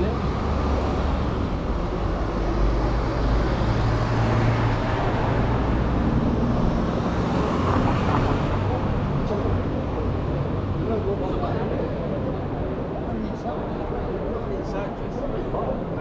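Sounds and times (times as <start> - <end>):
street ambience: 0.0 - 16.0.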